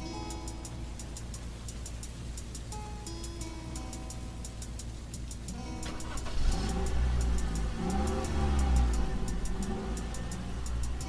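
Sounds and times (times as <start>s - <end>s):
ticking percussion: 0.0s - 11.0s
deep bass: 6.5s - 11.0s.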